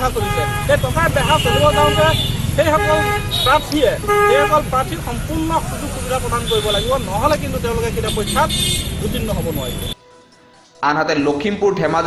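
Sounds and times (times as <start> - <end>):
man speaking into microphones: 0.0 - 10.0.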